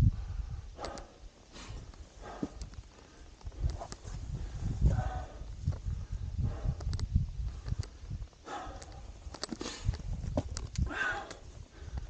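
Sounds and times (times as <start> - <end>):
wind buffeting microphone: 0.0 - 12.0
heavy breathing: 0.2 - 3.4, 4.3 - 6.9, 8.4 - 10.1, 10.8 - 12.0.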